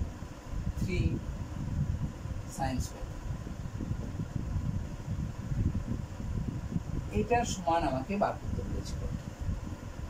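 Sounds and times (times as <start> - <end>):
electric fan rumbling: 0.0 - 10.0.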